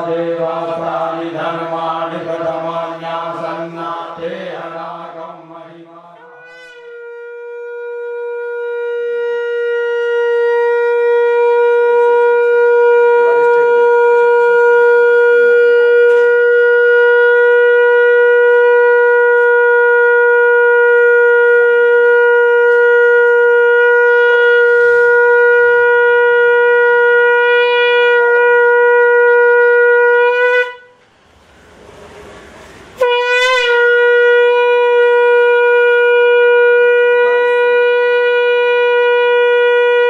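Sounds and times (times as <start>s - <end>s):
conch shell blown: 0.0s - 31.7s, 32.5s - 40.0s.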